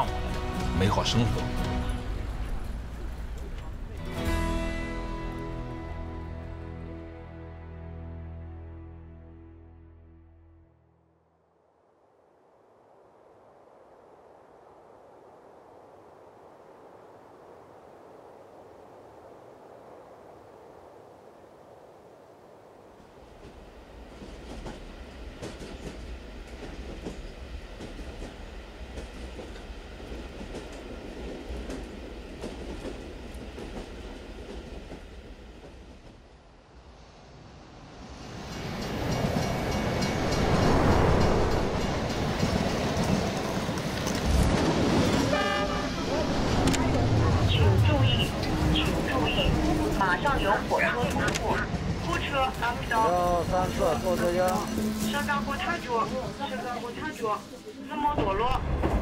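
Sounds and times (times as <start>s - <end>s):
passenger train running: 0.0s - 6.9s, 23.1s - 59.0s
train horn: 45.2s - 46.3s, 54.3s - 56.4s.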